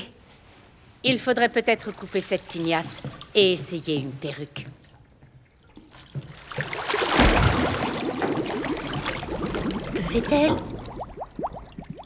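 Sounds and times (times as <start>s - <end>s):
bathwater sloshing and splashing: 1.6s - 12.0s
bubbling gurgles: 6.6s - 12.0s.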